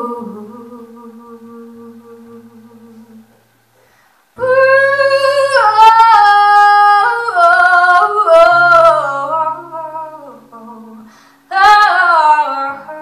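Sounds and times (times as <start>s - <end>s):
woman singing long notes: 0.0s - 3.3s, 4.4s - 13.0s.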